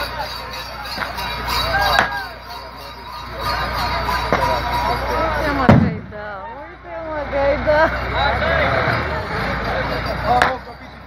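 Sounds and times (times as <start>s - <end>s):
diesel engine idling: 0.0s - 11.0s
people talking: 0.0s - 11.0s.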